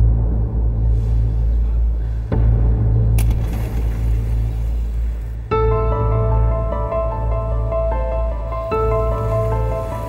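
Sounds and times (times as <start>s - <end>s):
low rumbling drone music: 0.0s - 10.0s.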